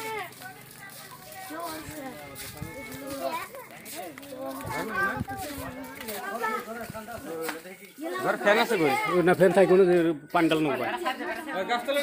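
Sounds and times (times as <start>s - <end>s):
people and children talking: 0.0s - 12.0s.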